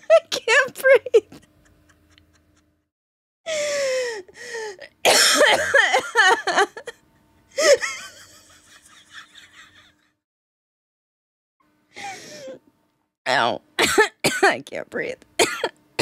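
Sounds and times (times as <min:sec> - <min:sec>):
woman laughing hard: 0:00.0 - 0:02.8, 0:03.5 - 0:10.2.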